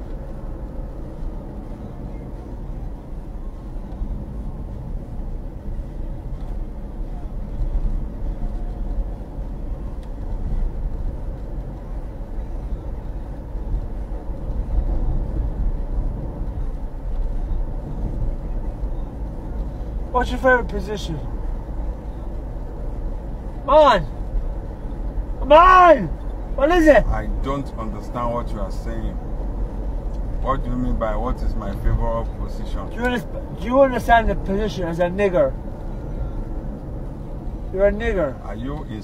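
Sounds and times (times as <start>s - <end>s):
car engine rumble: 0.0s - 39.0s
road noise: 0.0s - 39.0s.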